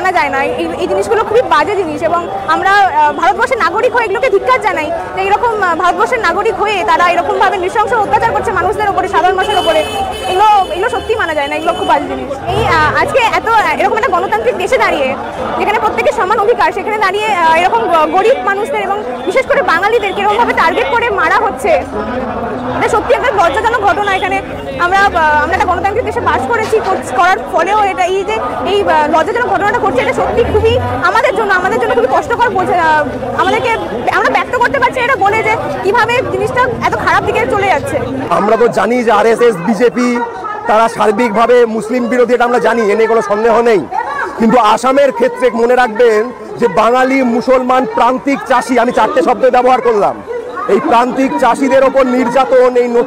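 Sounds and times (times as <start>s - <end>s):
woman speaking: 0.0s - 21.8s, 22.8s - 38.1s
woman talking: 0.0s - 21.8s, 22.8s - 38.1s
street crowd chatter: 0.0s - 53.0s.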